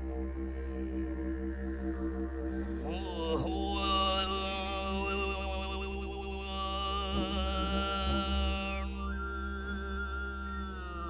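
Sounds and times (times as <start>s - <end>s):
children's choir singing drone: 1.6s - 11.0s.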